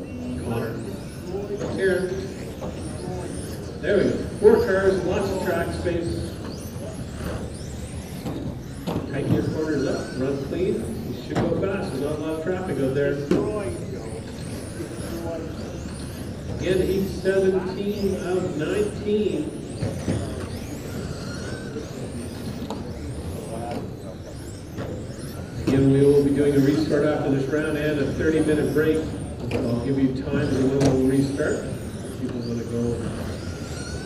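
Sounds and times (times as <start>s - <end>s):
electric rc car motors whining: 0.0s - 34.0s
steady background noise: 0.0s - 34.0s.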